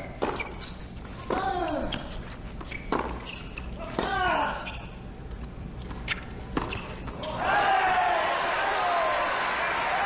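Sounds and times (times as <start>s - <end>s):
crowd cheering and shouting: 7.3s - 10.0s.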